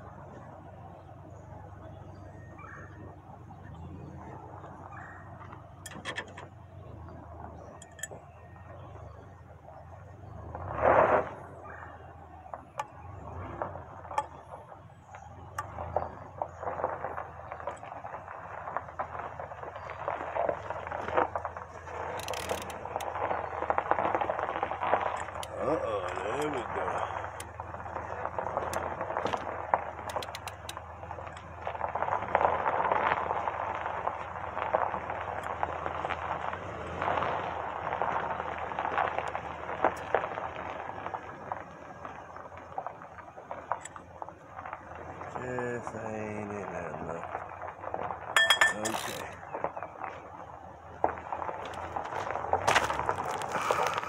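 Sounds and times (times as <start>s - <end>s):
wrench clicking on lug nuts: 22.2s - 22.8s.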